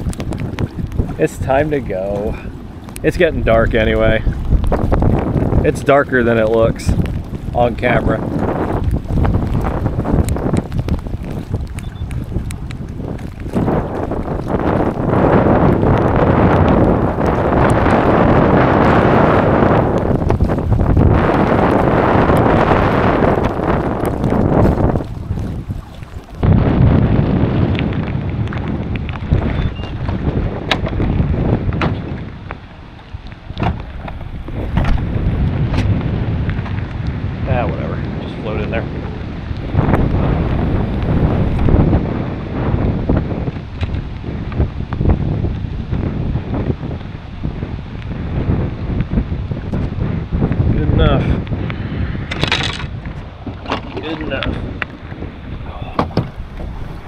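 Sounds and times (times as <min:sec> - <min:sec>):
raindrops ticking on camera: 0:00.0 - 0:56.7
strong wind buffeting microphone: 0:00.0 - 0:57.0
water splashing against kayak hull: 0:00.0 - 0:57.0.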